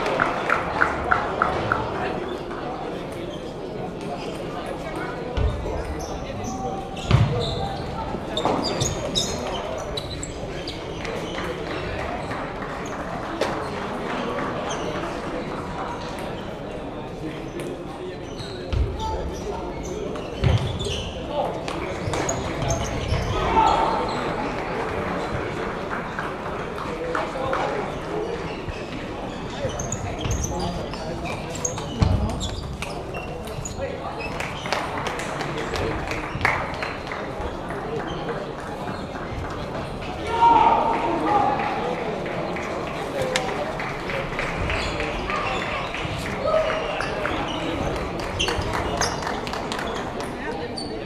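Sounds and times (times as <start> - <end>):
murmur of voices: 0.0 - 51.0
shoes squeaking on floor: 5.4 - 11.6, 17.5 - 21.4, 22.0 - 24.3, 28.0 - 34.9, 44.8 - 51.0.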